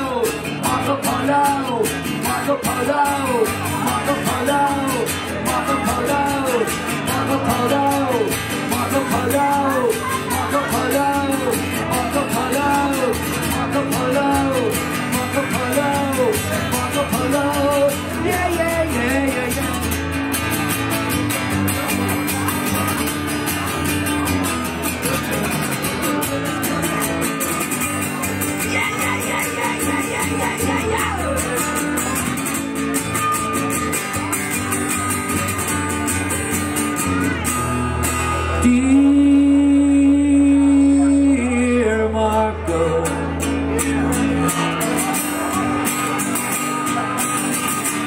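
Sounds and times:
acoustic guitars strummed and picked: 0:00.0 - 0:48.0.

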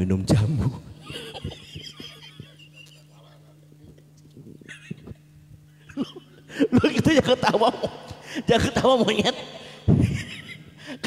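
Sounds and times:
low electrical hum: 0:00.0 - 0:11.0
person laughing into microphone: 0:01.0 - 0:04.0, 0:04.6 - 0:08.2, 0:09.8 - 0:11.0.

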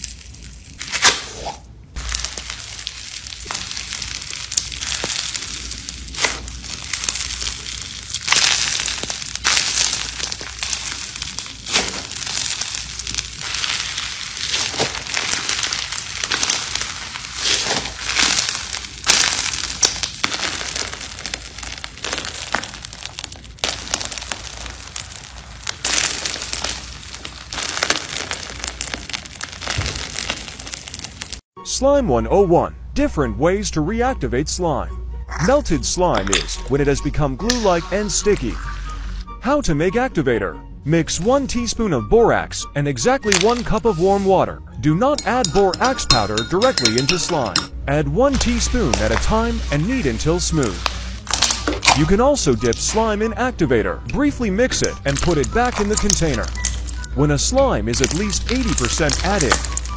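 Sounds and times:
slime crackling and crunching: 0:00.0 - 0:01.4, 0:02.0 - 0:31.5, 0:43.2 - 0:44.3, 0:45.2 - 0:47.7, 0:48.3 - 0:53.2, 0:54.7 - 0:57.1, 0:57.9 - 0:59.9.

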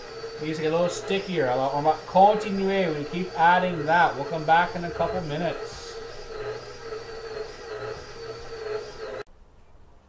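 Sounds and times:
stand mixer motor humming: 0:00.0 - 0:09.3.

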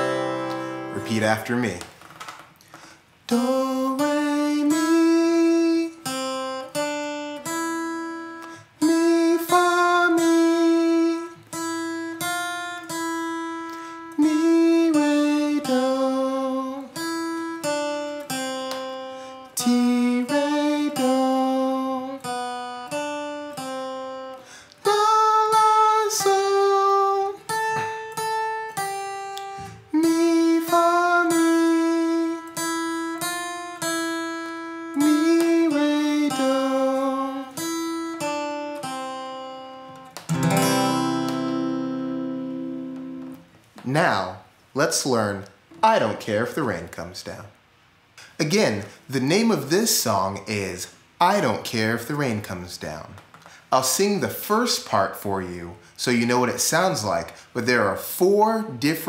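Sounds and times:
strummed acoustic guitar: 0:00.0 - 0:01.7, 0:02.7 - 0:44.1
man singing warm-up phrases: 0:03.3 - 0:06.1, 0:08.8 - 0:11.4, 0:14.1 - 0:16.9, 0:19.6 - 0:22.3, 0:24.8 - 0:27.5, 0:29.9 - 0:32.6, 0:34.9 - 0:37.6.

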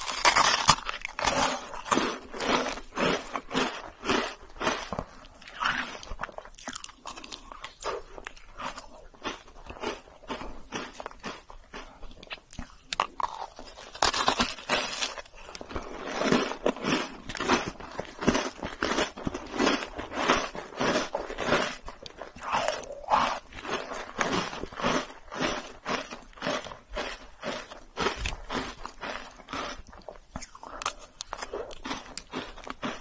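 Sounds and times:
biting and chewing cookie: 0:00.0 - 0:33.0.

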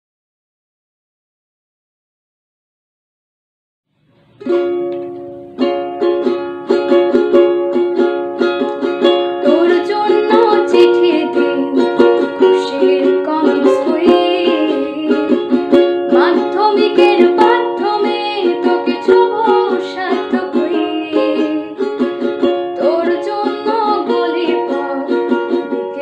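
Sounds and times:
ukulele strumming: 0:04.2 - 0:26.0
woman singing: 0:09.4 - 0:21.9, 0:22.8 - 0:26.0.

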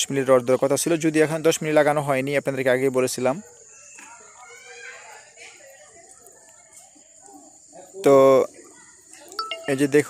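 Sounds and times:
man speaking: 0:09.5 - 0:10.0.

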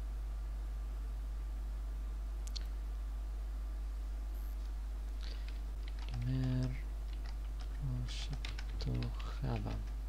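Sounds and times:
steady low hum: 0:00.0 - 0:10.0
keyboard typing clicks: 0:05.2 - 0:10.0.

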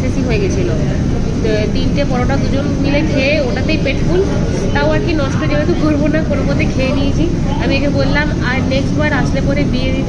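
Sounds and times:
low background rumble: 0:00.0 - 0:10.0
woman talking: 0:00.0 - 0:10.0.

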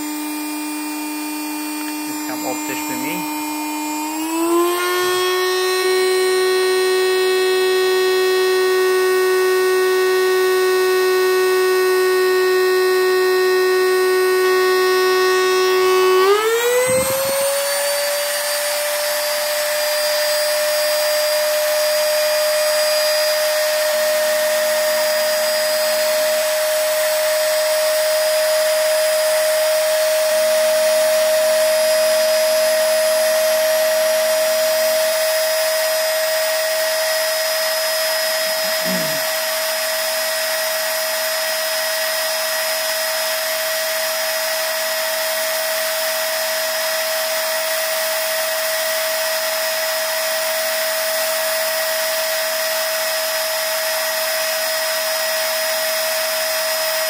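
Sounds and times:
rotary tool motor whining: 0:00.0 - 0:57.0.

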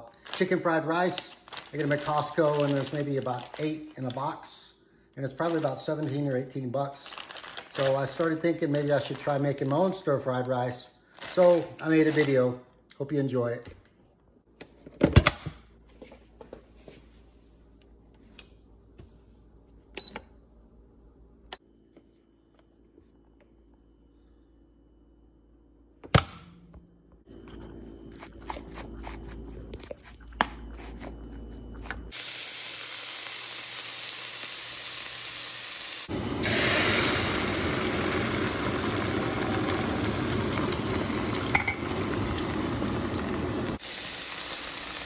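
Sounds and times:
eggs sizzling in a frying pan: 0:32.1 - 0:45.0.

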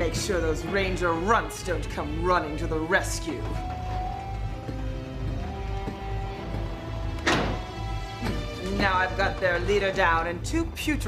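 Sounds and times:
dramatic background score: 0:00.0 - 0:11.0.

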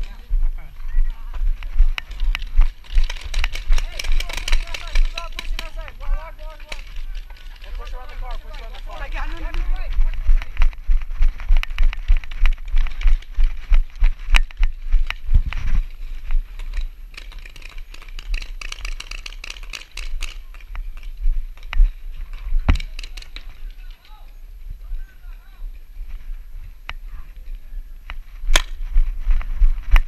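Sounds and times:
running footsteps on dirt: 0:00.0 - 0:22.8
gear rattling: 0:01.1 - 0:24.2
paintball marker shots: 0:28.5 - 0:28.8.

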